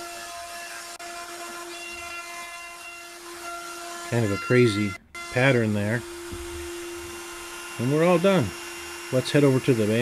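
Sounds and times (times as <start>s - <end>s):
router whining while cutting wood: 0.0s - 10.0s.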